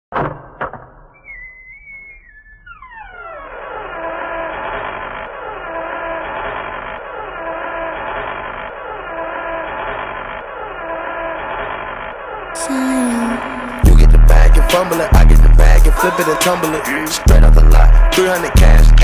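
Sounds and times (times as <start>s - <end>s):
muffled trap beat with chord pad: 13.7s - 19.0s.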